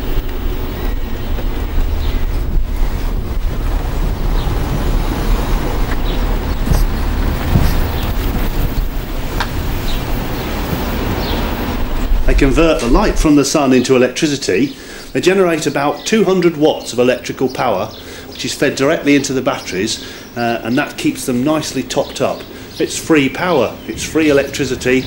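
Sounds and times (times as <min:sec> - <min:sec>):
wind buffeting microphone: 0:00.0 - 0:15.5.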